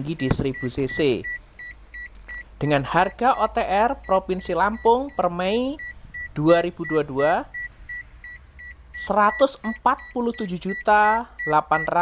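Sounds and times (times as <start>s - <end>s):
car warning chime beeping: 0.0s - 12.0s.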